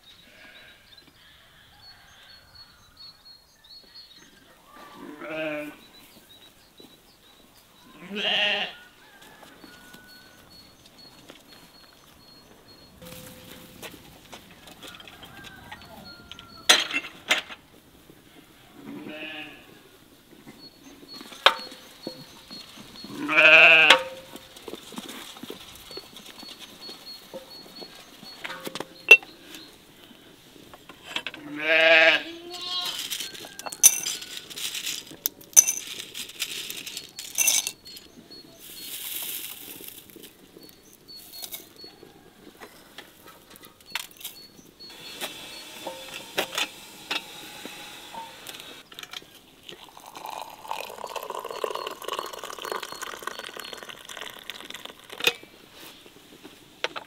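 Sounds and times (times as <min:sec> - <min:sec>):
sheep bleating: 0:04.8 - 0:05.8, 0:07.9 - 0:08.8, 0:18.8 - 0:19.8, 0:23.1 - 0:24.0, 0:31.4 - 0:33.0.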